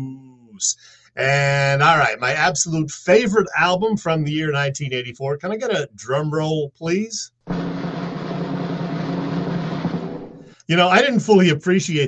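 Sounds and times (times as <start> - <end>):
snare drum roll: 7.5 - 11.0.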